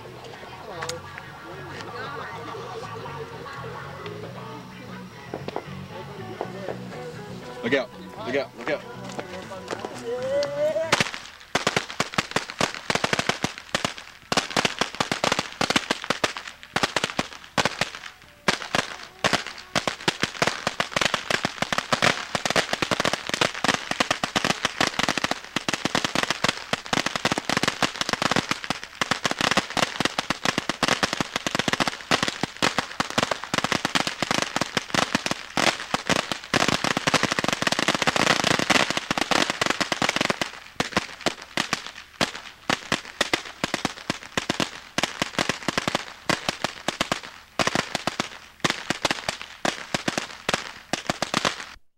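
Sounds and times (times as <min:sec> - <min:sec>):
firecrackers popping: 0:00.0 - 0:51.9.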